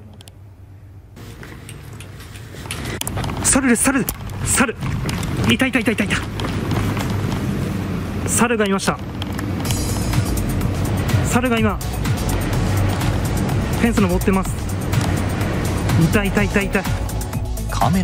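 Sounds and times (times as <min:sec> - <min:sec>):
background music: 0:09.2 - 0:18.0.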